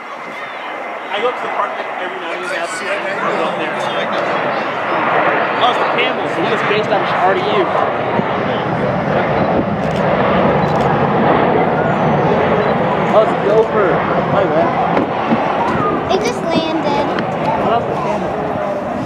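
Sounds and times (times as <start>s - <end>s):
people talking indistinctly: 0.0s - 10.1s, 10.7s - 19.0s
jet engines rushing: 0.0s - 19.0s.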